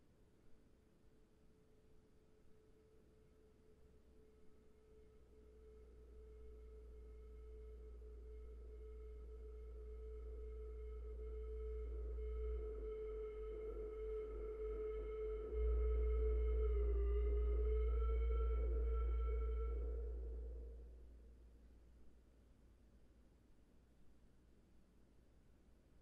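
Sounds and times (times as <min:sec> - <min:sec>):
deep steady low drone: 0:02.8 - 0:22.8.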